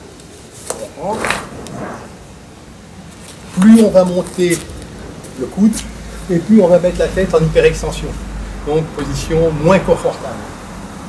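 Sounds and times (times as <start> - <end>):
man speaking: 0.8 - 1.5, 5.4 - 10.5.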